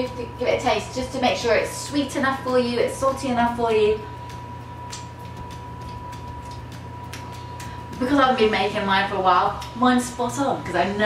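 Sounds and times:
low hum: 0:00.0 - 0:11.0
thin whine: 0:00.0 - 0:11.0
mouth smacking clicks: 0:04.9 - 0:05.2.

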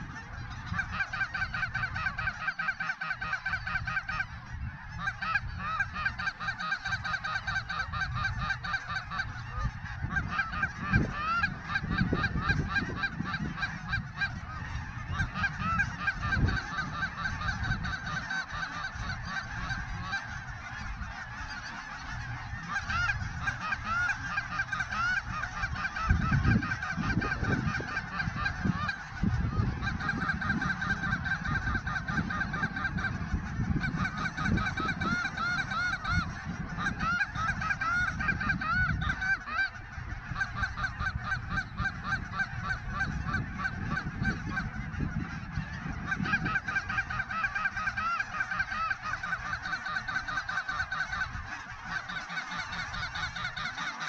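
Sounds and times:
wind rumbling on microphone: 0:00.0 - 0:53.8
geese honking: 0:00.0 - 0:54.0.

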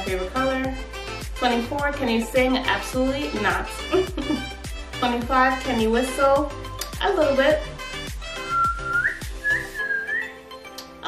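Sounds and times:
quiet background music: 0:00.0 - 0:11.0
woman whistling: 0:08.4 - 0:10.4.

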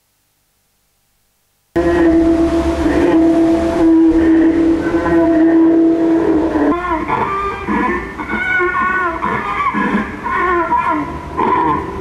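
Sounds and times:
bowed string droning note: 0:01.8 - 0:08.2.

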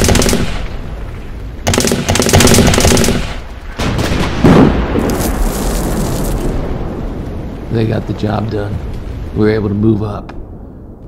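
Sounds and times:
machine-gun fire: 0:00.0 - 0:00.7, 0:01.6 - 0:05.0
loud explosion: 0:02.4 - 0:07.8.

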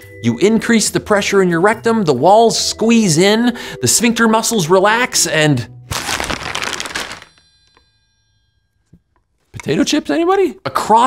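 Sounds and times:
chip tube crunching: 0:05.9 - 0:07.4
bell-like chime: 0:07.0 - 0:08.9.

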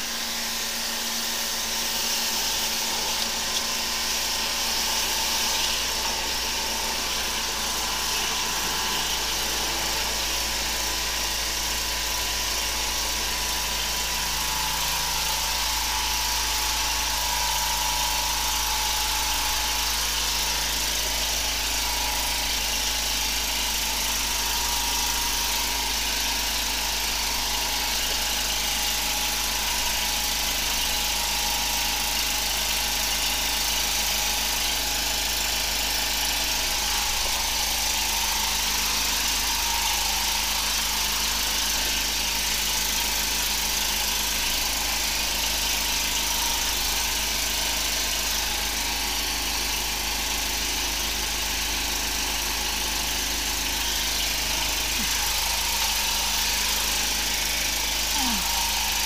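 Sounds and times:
steady high whine: 0:00.0 - 0:45.3
water jet hissing: 0:00.0 - 0:49.1, 0:53.5 - 0:59.0
pump engine droning: 0:00.0 - 0:59.0.

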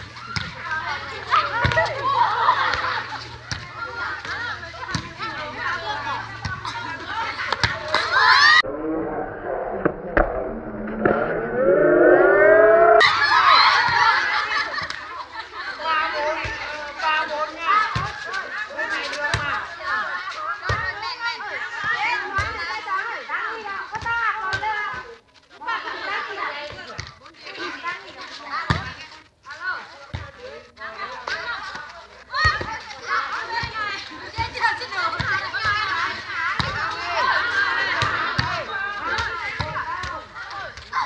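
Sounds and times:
women chattering and calling out: 0:00.0 - 0:09.6, 0:13.0 - 0:41.0
high-pitched voices shouting: 0:08.2 - 0:13.6.

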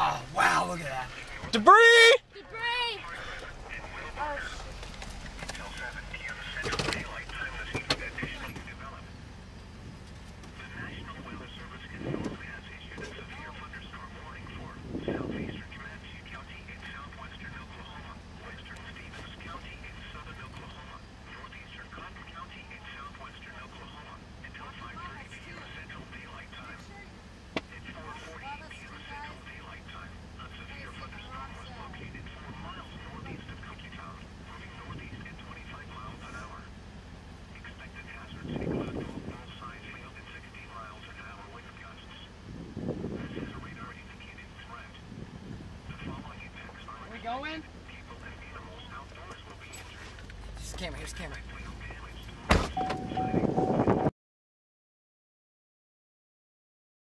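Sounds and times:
steady low rumble: 0:00.0 - 0:54.1
faint tinny voices talking: 0:37.4 - 0:42.4, 0:43.0 - 0:45.1, 0:45.8 - 0:52.5.

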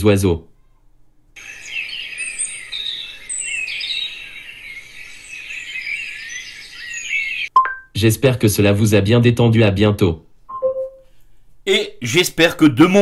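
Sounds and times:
small birds chirping: 0:00.5 - 0:07.5.

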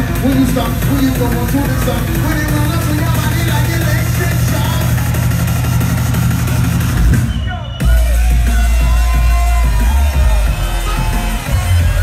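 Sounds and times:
deep sub-bass drop: 0:00.0 - 0:12.0
electronic dance music: 0:00.0 - 0:12.0.

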